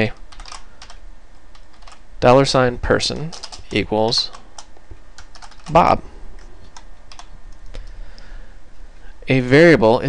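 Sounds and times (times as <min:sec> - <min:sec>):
low steady hum: 0:00.0 - 0:10.0
computer keyboard keystrokes: 0:00.2 - 0:02.0, 0:03.3 - 0:05.8, 0:06.7 - 0:07.7.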